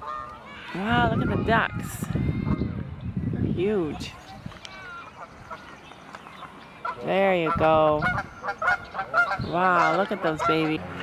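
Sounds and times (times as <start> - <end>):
waterfowl calls: 0.0 - 1.7, 4.0 - 11.0.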